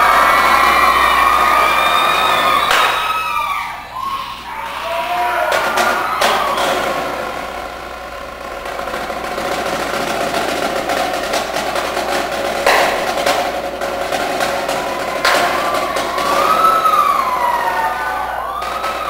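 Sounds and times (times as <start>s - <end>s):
audience cheering and whistling: 0.0s - 19.0s
marching snare drum strokes: 5.5s - 19.0s.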